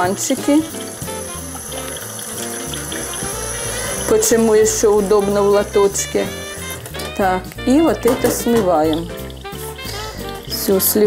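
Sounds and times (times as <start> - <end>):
tap water filling cups: 0.0 - 11.0
background music with bass line: 0.5 - 11.0.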